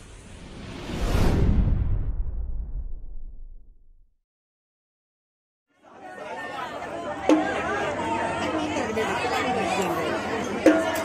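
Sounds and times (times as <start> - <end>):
crowd chatter: 5.7 - 11.0.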